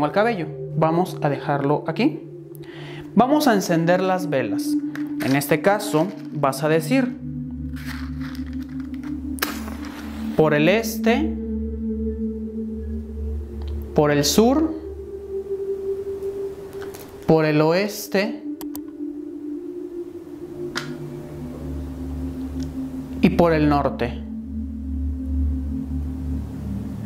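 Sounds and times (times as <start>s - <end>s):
low background music drone: 0.0s - 27.0s.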